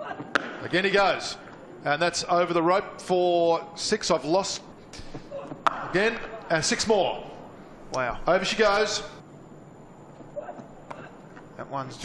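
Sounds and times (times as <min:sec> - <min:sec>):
cricket bat striking ball: 0:00.1 - 0:01.6, 0:05.0 - 0:06.4.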